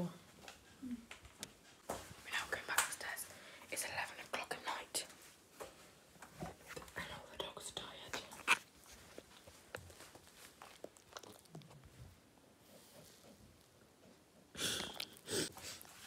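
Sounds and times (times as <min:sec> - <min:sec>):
person whispering: 0:02.2 - 0:05.1, 0:06.9 - 0:08.5.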